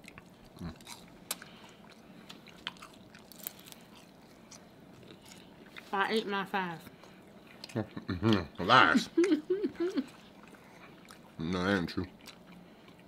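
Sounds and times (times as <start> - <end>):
close chewing of crispy food: 0.0 - 13.0.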